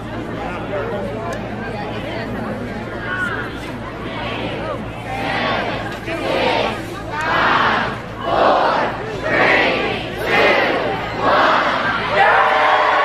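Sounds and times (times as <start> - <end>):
crowd shouting a countdown: 2.9 - 13.0.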